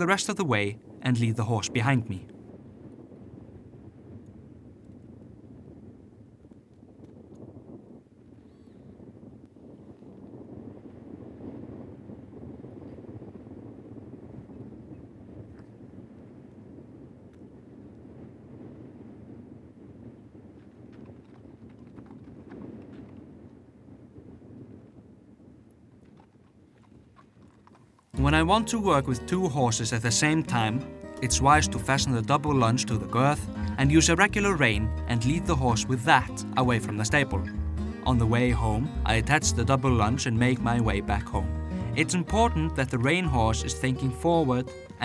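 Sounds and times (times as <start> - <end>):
wind buffeting microphone: 0.0 - 45.0
horse hooves on dirt: 20.0 - 28.7.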